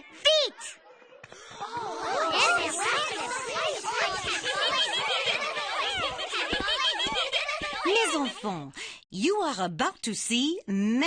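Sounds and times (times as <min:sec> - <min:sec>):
girls chattering and giggling: 0:00.0 - 0:08.8.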